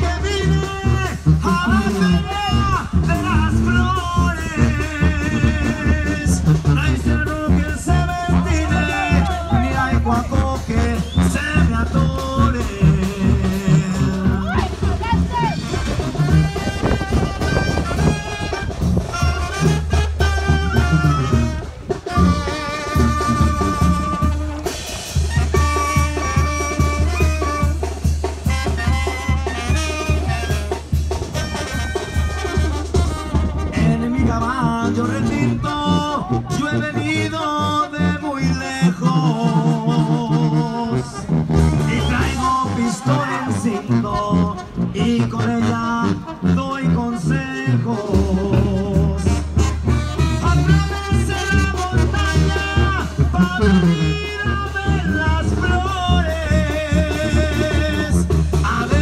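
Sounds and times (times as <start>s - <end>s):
live band with brass and bass: 0.0s - 59.0s.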